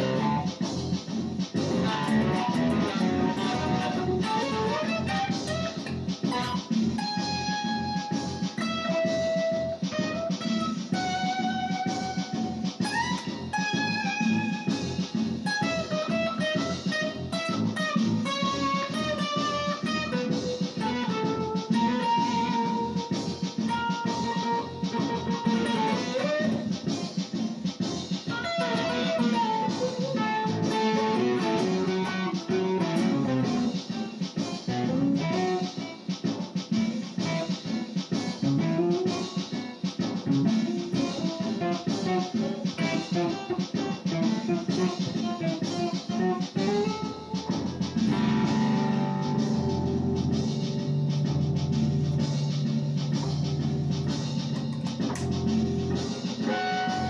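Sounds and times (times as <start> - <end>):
rhythmic accompaniment: 0.0 - 57.0
electric guitar lead line: 1.6 - 26.7, 28.3 - 33.8, 48.0 - 52.4, 54.1 - 57.0.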